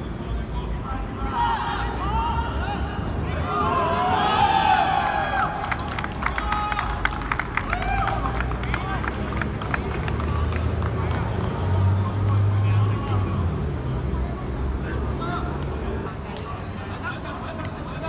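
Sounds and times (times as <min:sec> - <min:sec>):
players shouting: 0:01.2 - 0:09.5.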